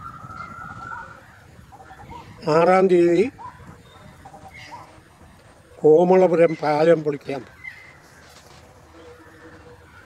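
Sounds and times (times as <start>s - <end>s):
whistle-like bird call: 0.0s - 1.4s
soft bird chirps: 3.4s - 5.1s, 6.3s - 10.0s.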